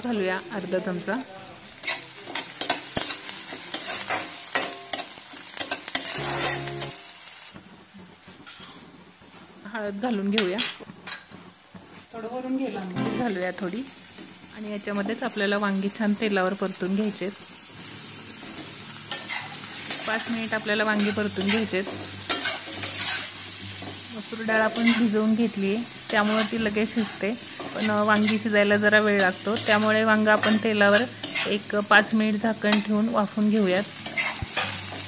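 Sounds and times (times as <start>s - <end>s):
food sizzling in hot oil: 0.0s - 35.0s
spatula scraping a pan: 1.8s - 7.0s, 8.4s - 9.5s, 18.4s - 25.2s, 25.9s - 31.8s, 33.9s - 35.0s.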